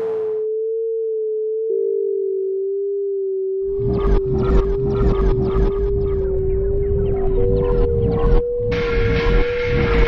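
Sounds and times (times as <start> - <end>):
electronic sine tone: 0.0 - 10.0
dense pulsing electronic texture: 3.7 - 10.0.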